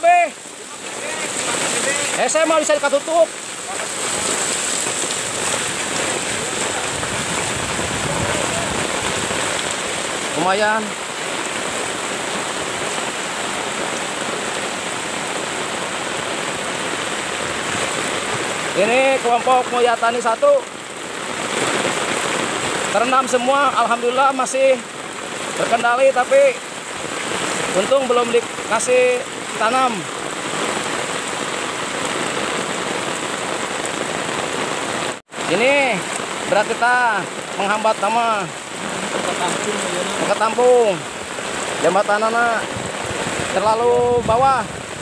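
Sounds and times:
heavy rain on standing water: 0.0 - 45.0.

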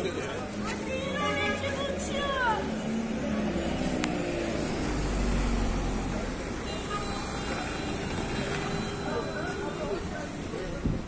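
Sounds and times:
passers-by talking: 0.0 - 11.0.

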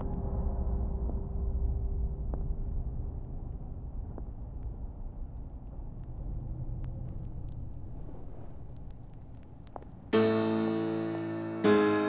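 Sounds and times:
low background rumble: 0.0 - 10.2.

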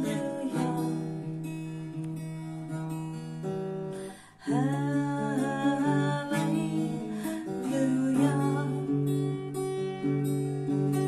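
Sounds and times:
woman singing long notes: 0.0 - 1.0, 4.4 - 9.0
acoustic guitar: 0.0 - 11.0.

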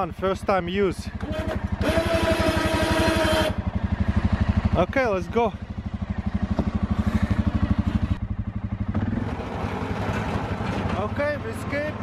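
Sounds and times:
atv engine running: 0.0 - 12.0.

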